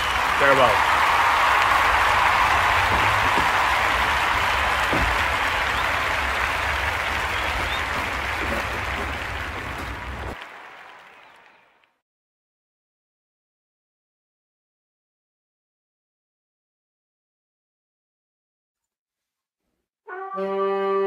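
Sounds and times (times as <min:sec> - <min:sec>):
crowd applause: 0:00.0 - 0:12.0.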